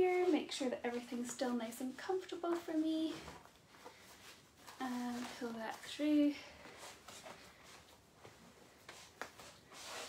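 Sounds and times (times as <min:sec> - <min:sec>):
fabric rubbing and rustling: 0:00.0 - 0:10.0.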